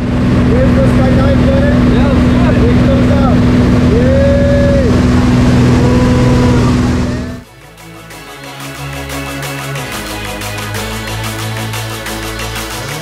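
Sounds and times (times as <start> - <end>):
loud wind rush: 0.0 - 7.4
propeller plane engine drone: 0.0 - 13.0.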